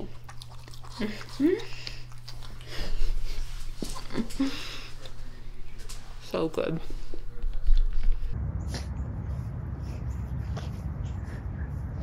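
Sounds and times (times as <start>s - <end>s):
chewing cookie: 0.0s - 5.3s
woman laughing: 4.0s - 4.8s.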